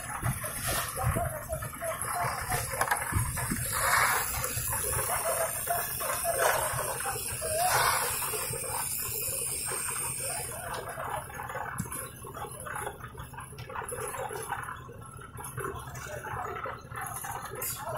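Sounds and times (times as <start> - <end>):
concrete mixer churning: 0.0 - 17.9
distant voices: 0.0 - 17.9.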